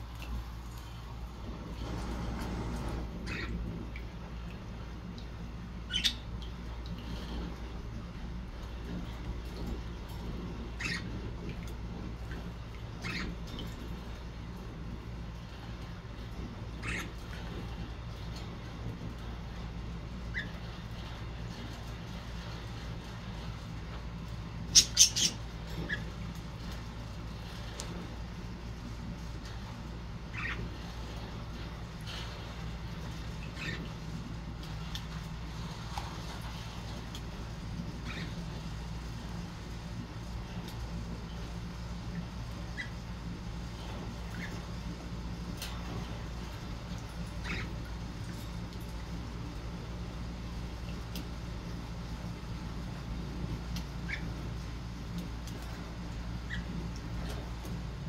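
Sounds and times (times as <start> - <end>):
steady low hum: 0.0 - 58.0.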